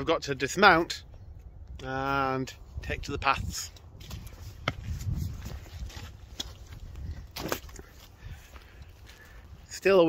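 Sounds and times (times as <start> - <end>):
wind rumbling on microphone: 0.9 - 9.7
footsteps on a path: 3.7 - 9.8.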